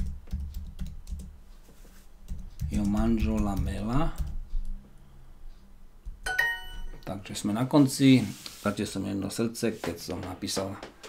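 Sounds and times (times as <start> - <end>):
computer keyboard typing: 0.0 - 1.4, 2.2 - 4.8.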